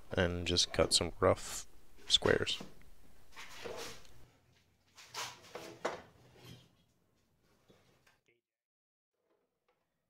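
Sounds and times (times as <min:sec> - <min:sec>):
board knocks and scrapes: 0:02.2 - 0:04.0, 0:04.9 - 0:06.8.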